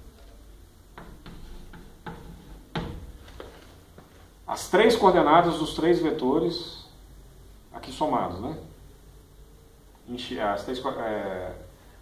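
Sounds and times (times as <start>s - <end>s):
chalk tapping and scratching on chalkboard: 0.9s - 3.6s.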